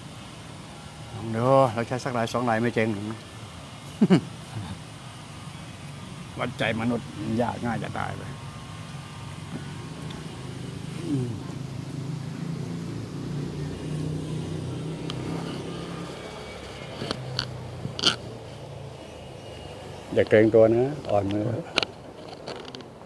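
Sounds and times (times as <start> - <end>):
low engine hum: 7.1 - 20.4.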